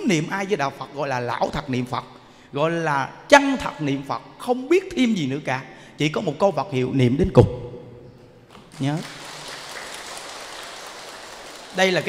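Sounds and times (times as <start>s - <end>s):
audience applauding: 8.5s - 12.0s.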